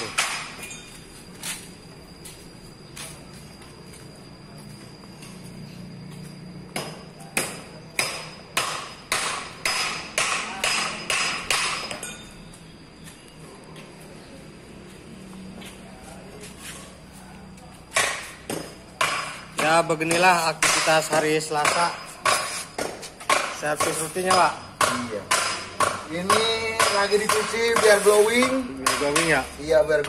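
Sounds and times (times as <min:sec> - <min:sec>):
hammer blows on steel: 0:17.9 - 0:29.6.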